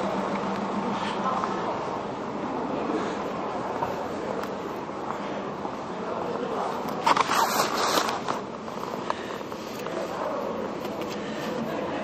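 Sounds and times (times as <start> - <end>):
murmur of people: 0.0 - 12.0
rustling scrape on microphone: 6.8 - 9.0.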